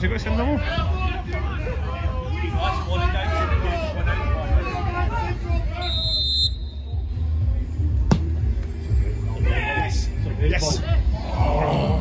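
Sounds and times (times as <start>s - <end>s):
referee's whistle blast: 5.8s - 7.0s.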